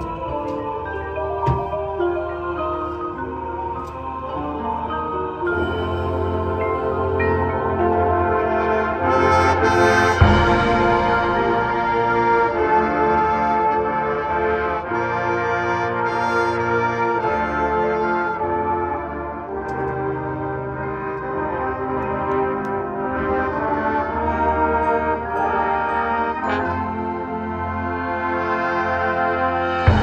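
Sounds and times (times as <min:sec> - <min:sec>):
marching band brass chords: 0:00.0 - 0:30.0.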